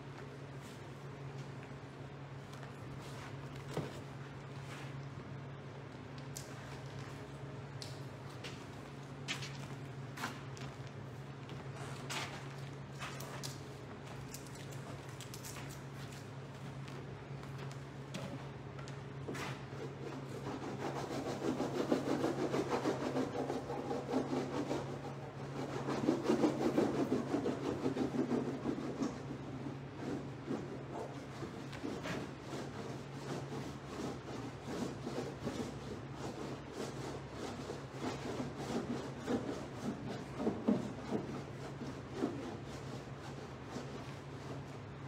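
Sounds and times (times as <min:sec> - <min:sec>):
steady low hum: 0:00.0 - 0:45.0
brush scrubbing paint: 0:19.3 - 0:45.0.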